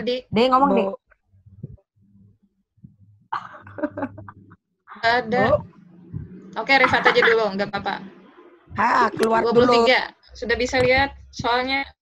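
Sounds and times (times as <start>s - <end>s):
faint low hum: 0.7s - 11.9s.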